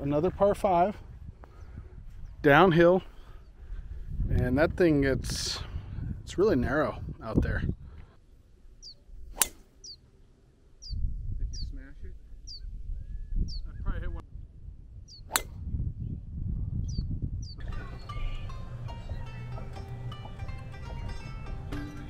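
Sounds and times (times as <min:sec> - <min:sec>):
wind on microphone: 0:00.0 - 0:08.2, 0:10.8 - 0:18.5
bird chirping: 0:08.7 - 0:09.1, 0:09.7 - 0:14.2, 0:15.0 - 0:15.4, 0:16.8 - 0:22.0
golf club hitting ball: 0:09.3 - 0:09.8, 0:15.3 - 0:15.6
background music: 0:17.6 - 0:22.0.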